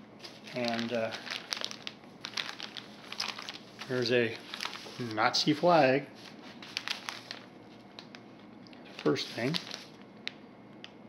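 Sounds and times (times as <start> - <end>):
plastic bag crinkling: 0.2 - 5.2, 6.2 - 10.4.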